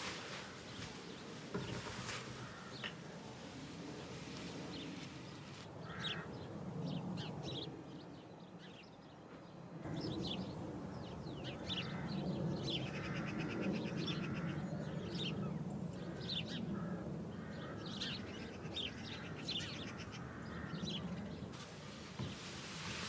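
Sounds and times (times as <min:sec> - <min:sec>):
songbirds chirping: 0:00.0 - 0:23.0.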